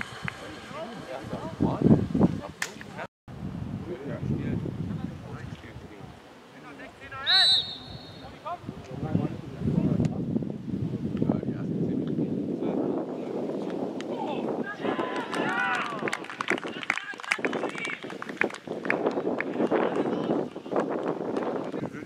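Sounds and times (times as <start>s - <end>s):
people shouting and calling out: 6.9s - 8.7s, 14.1s - 18.0s
high pitched shouts: 7.2s - 8.4s.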